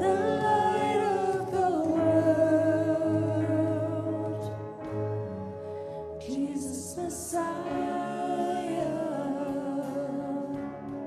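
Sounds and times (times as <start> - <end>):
worship band music: 0.0 - 11.0.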